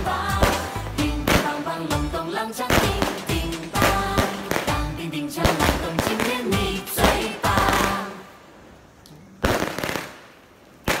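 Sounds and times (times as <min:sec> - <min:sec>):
festive song: 0:00.0 - 0:08.6.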